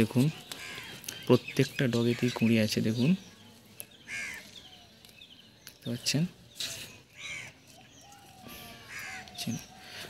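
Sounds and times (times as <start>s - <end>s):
crow cawing: 0.5s - 1.1s, 4.1s - 4.6s, 7.2s - 7.6s, 8.4s - 10.0s.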